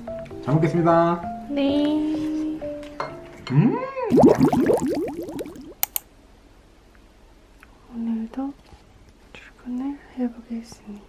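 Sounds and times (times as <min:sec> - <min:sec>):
sharp clicks: 0:05.8 - 0:06.0.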